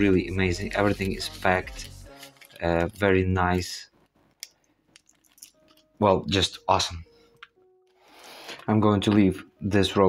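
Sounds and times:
plastic bag handling: 0.6 - 3.8.

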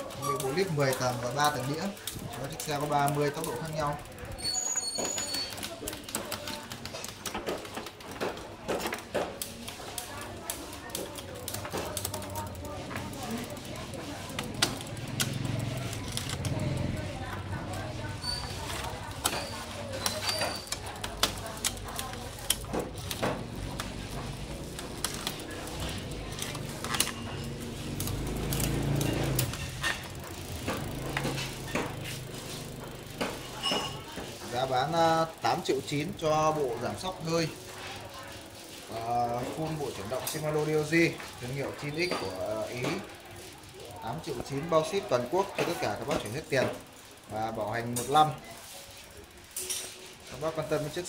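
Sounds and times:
freehub ticking: 0.0 - 38.1, 38.8 - 51.0
bike chain running over gears: 0.0 - 51.0
gear change clicks: 5.2 - 37.5.

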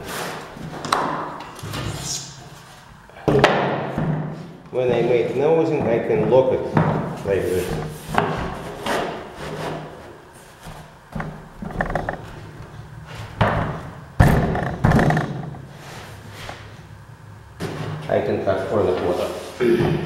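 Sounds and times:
floor planks rubbing and sliding: 7.3 - 10.9.

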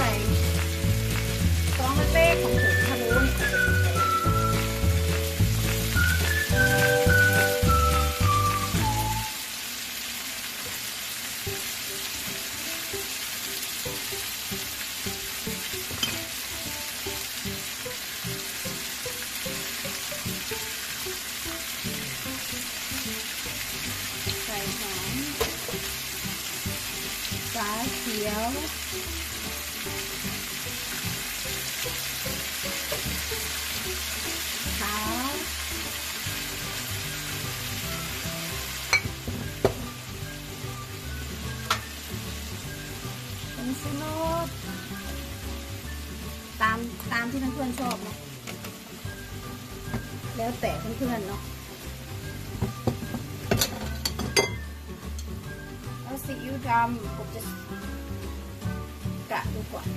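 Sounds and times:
background music: 0.0 - 9.4, 11.4 - 59.9.

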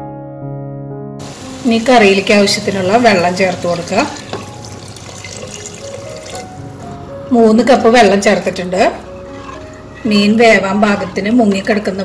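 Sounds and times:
water pouring into a pot: 1.2 - 6.7.

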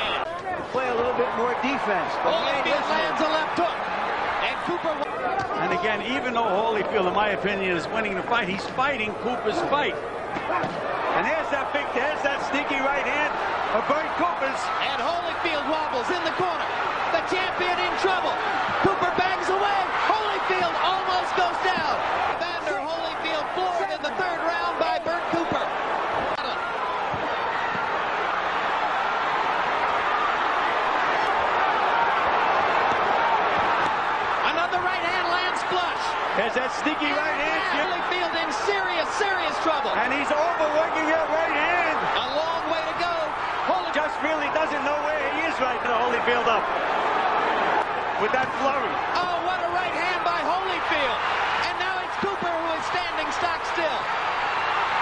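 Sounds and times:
crowd shouting and roaring: 0.0 - 55.0.

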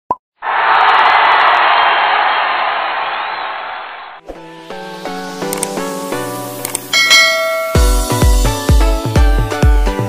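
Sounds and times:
loud rush of noise: 0.4 - 4.2.

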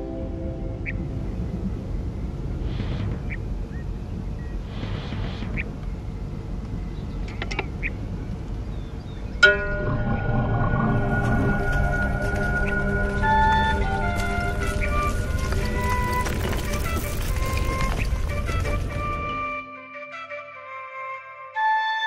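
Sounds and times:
sustained music: 0.0 - 3.0, 9.4 - 22.0
low rumbling drone: 0.0 - 19.6
struck note: 9.4 - 15.1.

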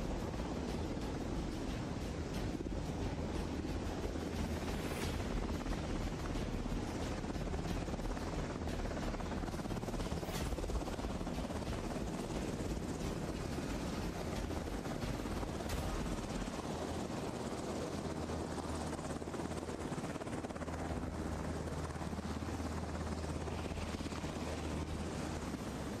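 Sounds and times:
helicopter rotor and turbine noise: 0.0 - 26.0
low hum: 0.0 - 26.0.

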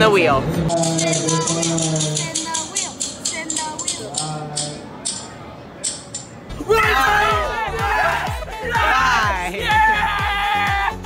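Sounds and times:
spinning wheel ticking: 0.7 - 6.3.

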